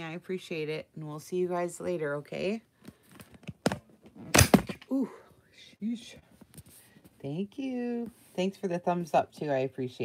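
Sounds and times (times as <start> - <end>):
thuds: 3.5 - 4.8.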